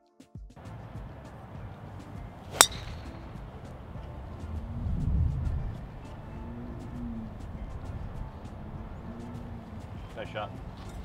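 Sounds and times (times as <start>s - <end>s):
golf driver striking ball: 0.8s - 4.8s.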